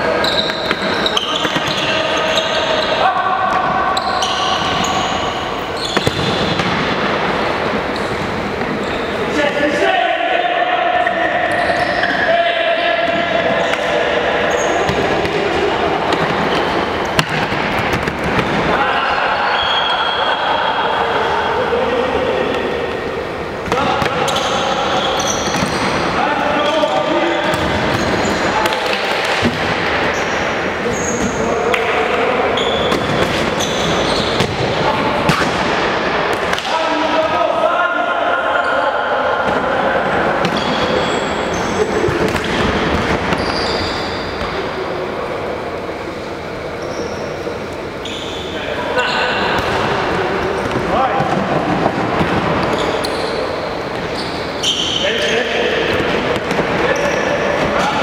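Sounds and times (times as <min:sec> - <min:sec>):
shoe squeaks on floor: 0:00.2 - 0:03.0, 0:03.9 - 0:06.4, 0:08.8 - 0:09.2, 0:14.5 - 0:14.9, 0:24.2 - 0:26.8, 0:30.1 - 0:31.4, 0:32.6 - 0:34.5, 0:40.5 - 0:42.0, 0:43.3 - 0:44.5, 0:46.8 - 0:47.4, 0:48.0 - 0:49.4, 0:52.7 - 0:55.5
players shouting: 0:09.2 - 0:33.0.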